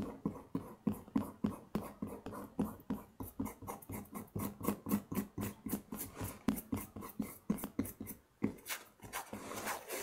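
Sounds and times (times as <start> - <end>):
fingertips scrubbing paper: 8.6 - 10.0.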